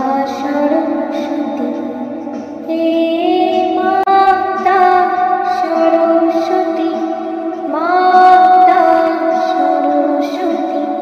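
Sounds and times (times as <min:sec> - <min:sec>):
woman singing devotional song: 0:00.0 - 0:11.0.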